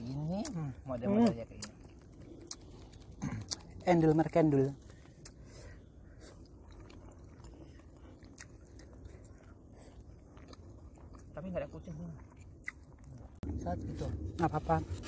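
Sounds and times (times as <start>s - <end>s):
quiet chewing: 0.0s - 14.3s.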